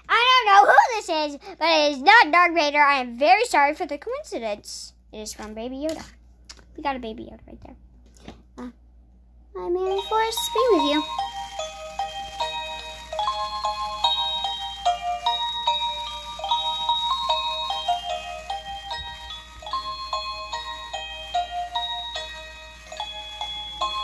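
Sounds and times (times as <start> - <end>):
snow globe chime melody: 9.8 - 24.0.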